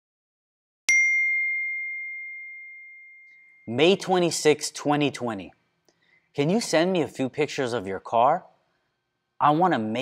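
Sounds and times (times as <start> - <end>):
high bell-like chime: 0.9 - 4.2.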